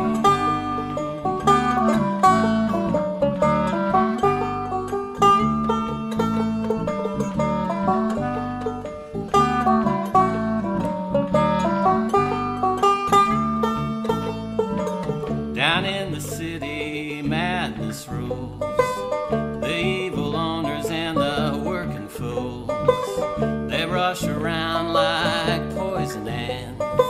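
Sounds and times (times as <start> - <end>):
banjo picking: 0.0 - 27.0
string band accompaniment: 0.0 - 27.0.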